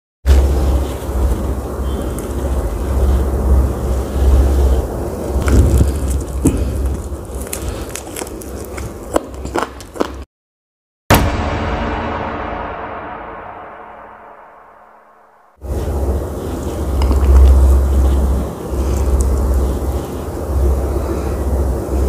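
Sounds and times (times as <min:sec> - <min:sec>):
crunchy chewing clicks: 0:05.2 - 0:10.3, 0:16.7 - 0:22.0.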